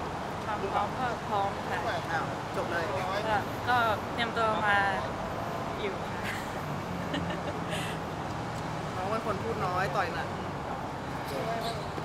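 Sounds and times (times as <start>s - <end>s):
outdoor background noise with hum: 0.0s - 12.0s
woman speaking: 3.7s - 5.1s.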